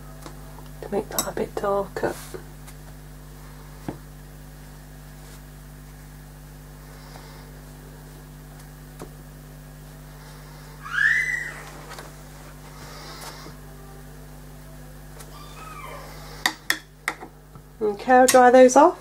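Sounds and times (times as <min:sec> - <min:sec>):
pet crying: 0:10.8 - 0:11.8, 0:15.3 - 0:16.4.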